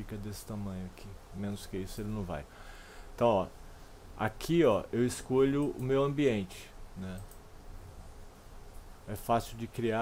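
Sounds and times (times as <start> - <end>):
low steady hum: 0.0 - 10.0
computer mouse clicks: 7.1 - 7.5.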